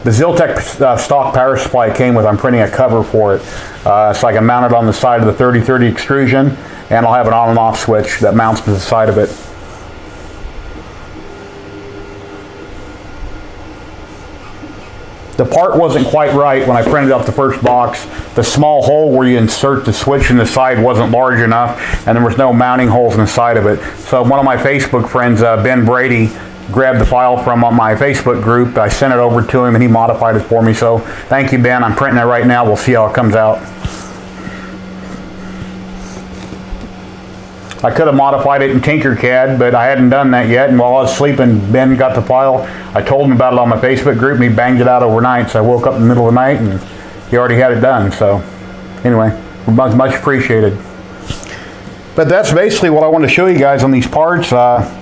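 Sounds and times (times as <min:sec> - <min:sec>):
printer motors humming: 0:00.0 - 0:55.0.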